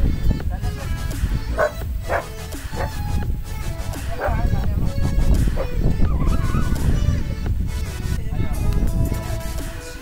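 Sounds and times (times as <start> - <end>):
background music: 0.0 - 10.0
dog yelping: 1.6 - 3.0.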